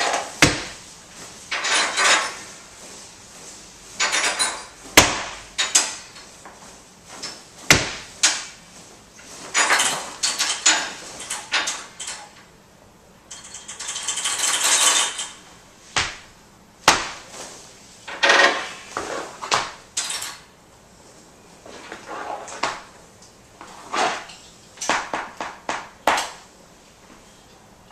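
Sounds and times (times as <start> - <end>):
sharp knocks: 0.4 - 0.8, 5.0 - 5.9, 7.7 - 8.5
improvised acoustic clicks and rattles: 9.5 - 12.5, 13.3 - 15.4.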